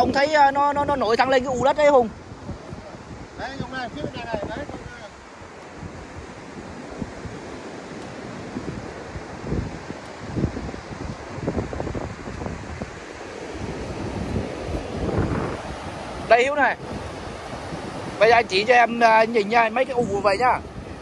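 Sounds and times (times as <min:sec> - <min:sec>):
sea surf: 0:00.0 - 0:21.0
wind buffeting microphone: 0:00.0 - 0:21.0.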